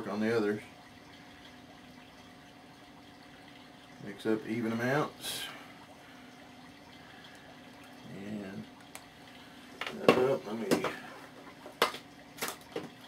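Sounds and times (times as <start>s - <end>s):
plastic bottles clicking and tapping: 9.8s - 11.0s, 11.6s - 13.0s.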